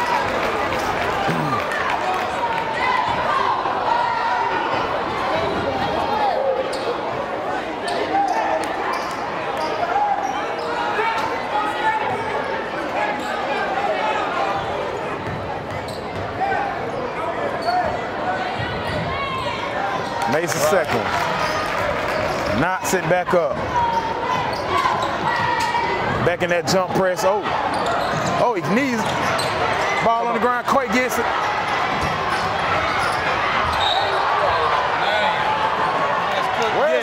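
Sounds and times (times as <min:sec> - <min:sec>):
crowd chatter: 0:00.0 - 0:37.0.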